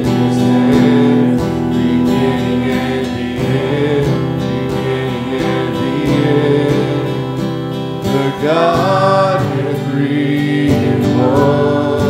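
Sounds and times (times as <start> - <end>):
acoustic guitar strumming: 0.0 - 12.0
choir singing praise song: 0.0 - 12.0.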